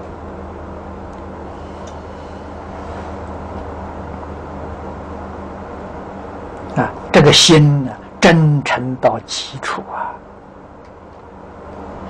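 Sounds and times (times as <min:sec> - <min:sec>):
steady low hum with hiss: 0:00.0 - 0:12.0.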